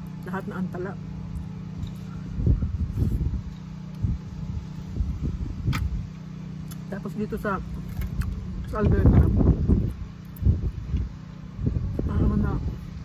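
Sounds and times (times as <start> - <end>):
steady low hum: 0.0 - 13.0
wind buffeting microphone: 1.2 - 6.4, 7.2 - 13.0.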